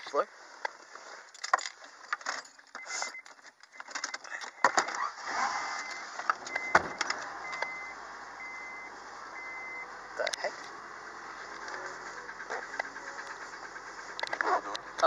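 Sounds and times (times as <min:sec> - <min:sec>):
clicks and rustling from handling: 0:00.6 - 0:05.0
car warning chime beeping: 0:02.8 - 0:15.0
car engine idling: 0:04.3 - 0:15.0.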